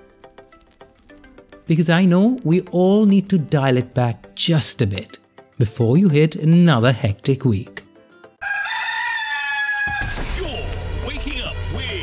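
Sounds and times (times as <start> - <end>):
rooster crowing: 8.4 - 10.2.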